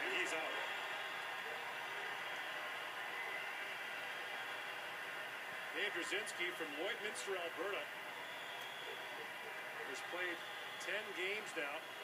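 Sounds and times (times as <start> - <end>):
crowd murmur from television: 0.0 - 12.0.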